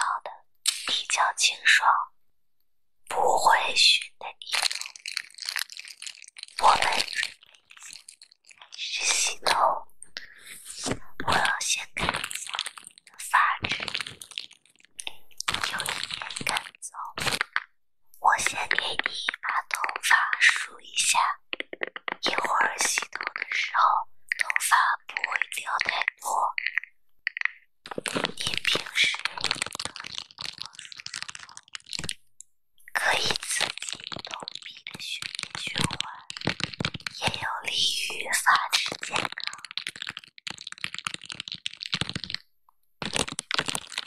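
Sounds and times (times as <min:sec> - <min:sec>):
plastic film crinkling: 0:04.4 - 0:08.8, 0:10.9 - 0:17.7, 0:21.2 - 0:23.6, 0:24.3 - 0:32.2, 0:33.0 - 0:37.4, 0:38.5 - 0:44.0.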